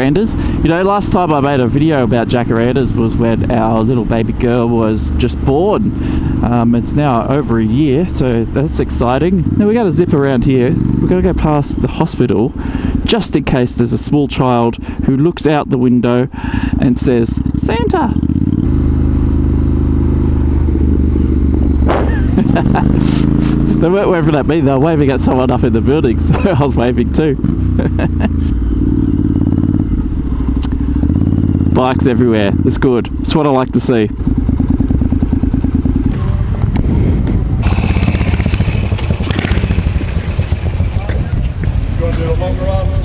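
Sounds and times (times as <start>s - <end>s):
motorcycle engine cruising: 0.0s - 15.0s, 16.3s - 43.0s.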